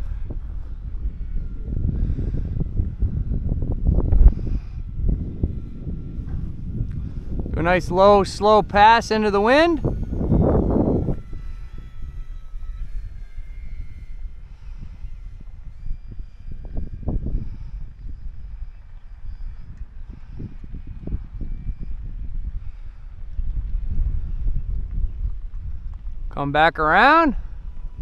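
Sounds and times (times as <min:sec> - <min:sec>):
model plane motors whining: 0:00.0 - 0:28.0
wind buffeting microphone: 0:00.0 - 0:28.0.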